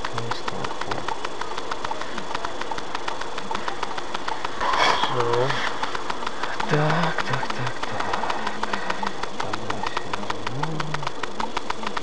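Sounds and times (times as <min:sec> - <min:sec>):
car engine idling: 0:00.0 - 0:12.0
rapid ticking: 0:00.0 - 0:12.0.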